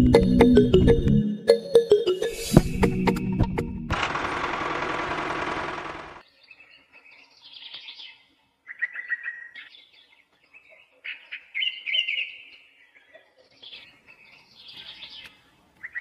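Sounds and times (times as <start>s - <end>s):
small birds chirping: 6.2s - 16.0s.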